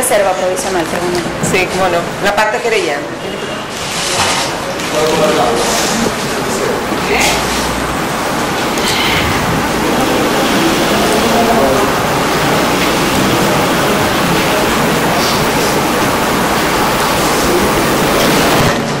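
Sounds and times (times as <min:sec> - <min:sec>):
faint indistinct voices: 0:00.0 - 0:19.0
loud steady hiss: 0:03.1 - 0:19.0.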